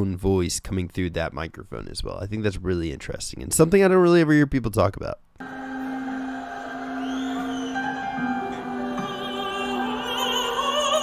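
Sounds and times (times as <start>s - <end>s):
concert band playing chords: 5.4s - 10.8s.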